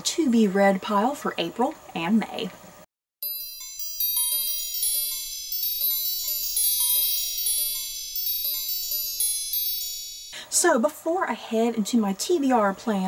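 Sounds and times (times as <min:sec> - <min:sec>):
sparkling bell-like chimes: 0:03.2 - 0:10.4.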